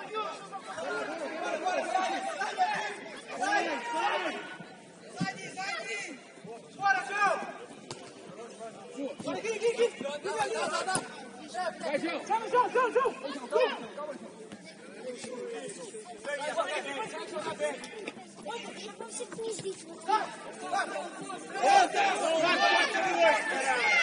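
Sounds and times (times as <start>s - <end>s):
players talking and calling out: 0.0s - 24.0s.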